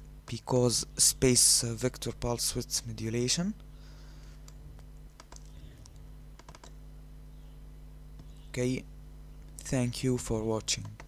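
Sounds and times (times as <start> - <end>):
steady low hum: 0.0 - 11.0
light computer clicks: 4.4 - 6.8, 10.6 - 11.0.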